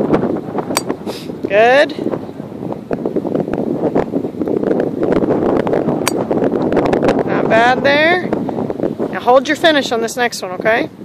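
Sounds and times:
wind buffeting microphone: 0.0s - 11.0s
golf club striking ball: 0.6s - 1.2s, 6.0s - 6.7s.

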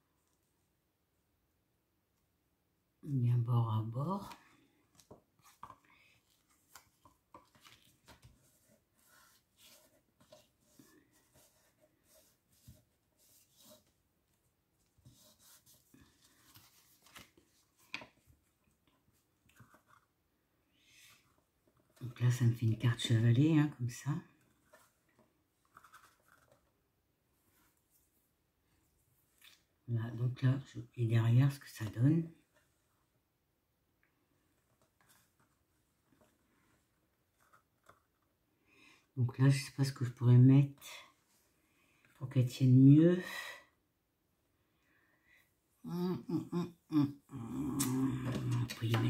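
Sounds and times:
paper rustling: 4.2s - 14.0s, 14.8s - 20.1s, 24.3s - 26.8s.

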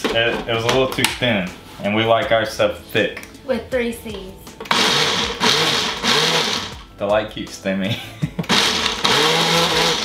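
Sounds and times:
blender running: 4.7s - 6.9s, 8.5s - 10.0s.

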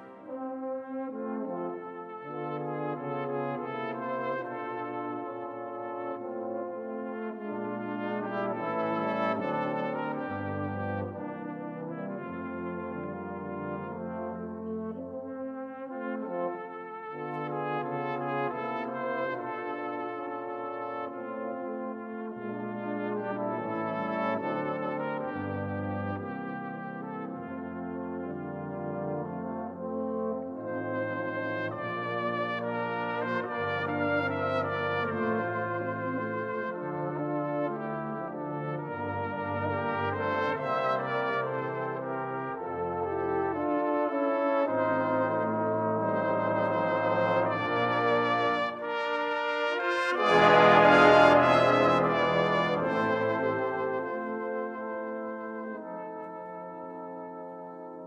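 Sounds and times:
brass band playing: 0.0s - 58.0s.

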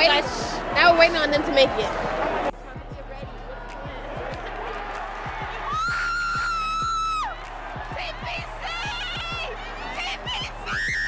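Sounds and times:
steady low thumps: 0.6s - 10.8s.

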